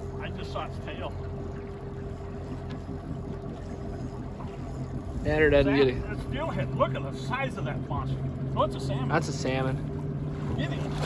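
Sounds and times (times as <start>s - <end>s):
boat motor running: 0.0s - 11.0s.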